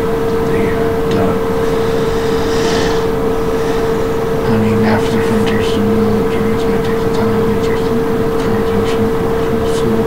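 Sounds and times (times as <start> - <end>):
loud steady hum: 0.0 - 10.0
low muffled voice: 0.3 - 1.6, 4.4 - 10.0.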